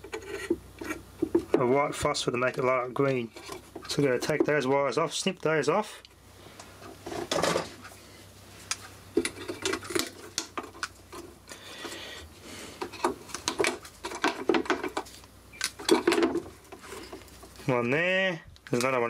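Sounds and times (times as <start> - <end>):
wires rattling and clicking: 8.7 - 11.6.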